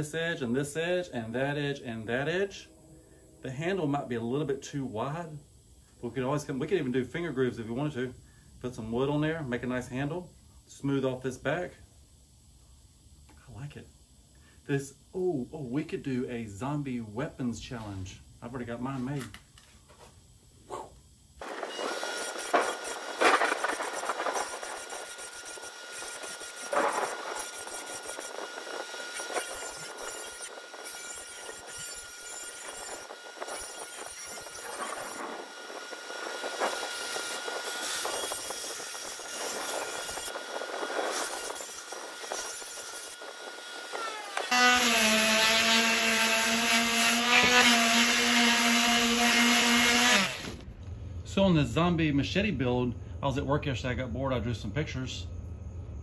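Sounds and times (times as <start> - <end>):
palm sander buzzing on steel: 20.8 - 50.6
bench grinder grinding blade: 21.4 - 50.6.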